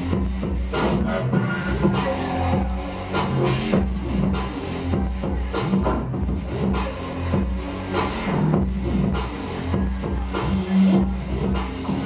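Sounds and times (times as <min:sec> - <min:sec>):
loud electronic bass music: 0:00.0 - 0:12.0.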